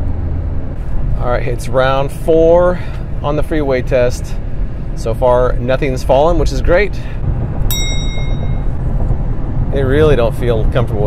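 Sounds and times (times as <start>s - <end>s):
car road and engine rumble: 0.0s - 11.0s
bell-like ding: 7.7s - 8.8s.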